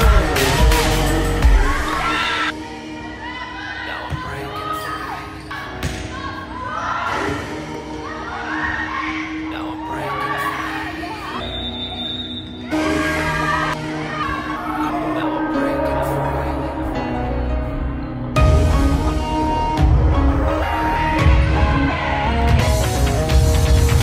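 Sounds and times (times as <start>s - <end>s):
loud music: 0.0s - 4.6s, 12.6s - 24.0s
shouts and cheers: 1.4s - 2.5s
high steady whistle: 11.4s - 12.7s.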